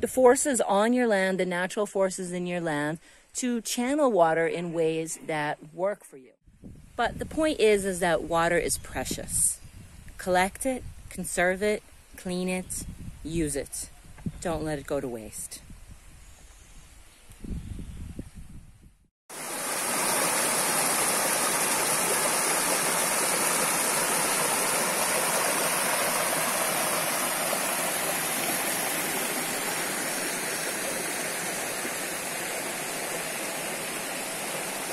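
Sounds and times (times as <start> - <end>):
stream rushing over stones: 19.3 - 34.9.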